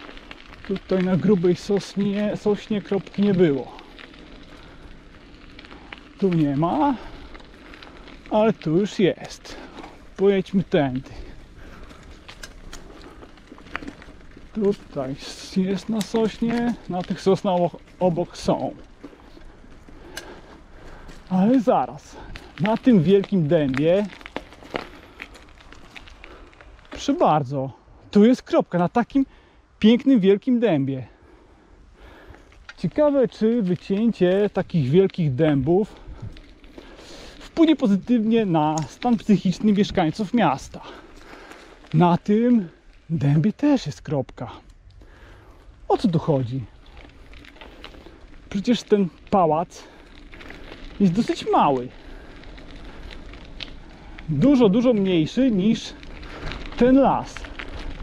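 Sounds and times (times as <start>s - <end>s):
bicycle rolling on dirt path: 0.0s - 58.0s
grit and twigs crackling: 0.0s - 58.0s.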